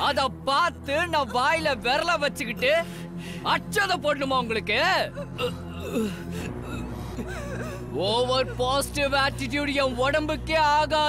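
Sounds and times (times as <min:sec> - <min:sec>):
low drone score: 0:00.0 - 0:11.0
person gasping and sobbing: 0:02.8 - 0:03.7, 0:05.1 - 0:08.8.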